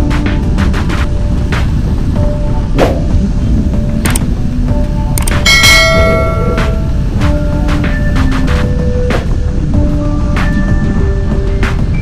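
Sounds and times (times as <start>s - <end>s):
quiet background music: 0.0s - 12.0s
wind and road rush: 0.0s - 12.0s
bell-like ding: 5.5s - 6.9s.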